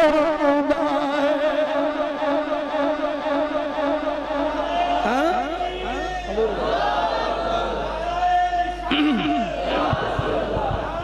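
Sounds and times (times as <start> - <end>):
man chanting over loudspeaker: 0.0 - 6.7.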